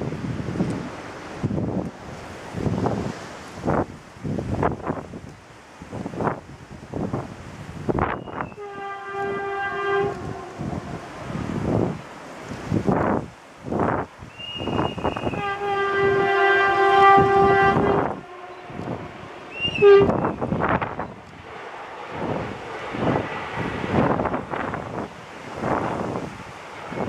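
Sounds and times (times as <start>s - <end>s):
electric train horn blasts: 8.0s - 12.0s, 14.3s - 21.6s.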